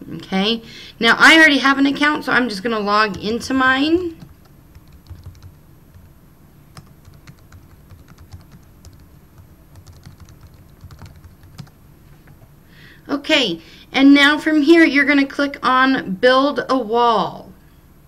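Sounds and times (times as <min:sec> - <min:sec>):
keyboard typing clicks: 0:04.2 - 0:06.1, 0:06.8 - 0:09.1, 0:09.7 - 0:11.7.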